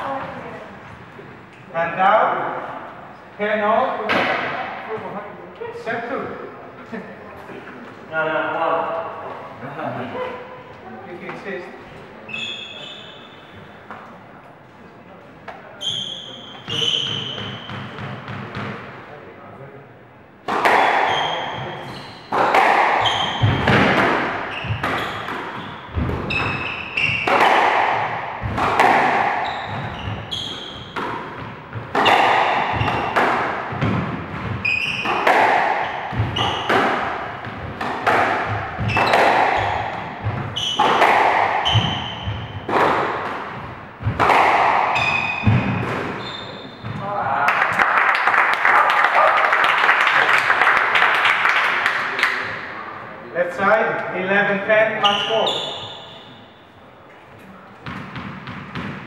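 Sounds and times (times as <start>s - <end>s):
shoes squeaking on wooden floor: 15.8s - 18.1s, 21.0s - 27.6s, 28.4s - 42.9s, 43.6s - 47.1s, 55.0s - 56.4s
squash ball hits: 20.4s - 47.2s, 57.8s - 59.0s.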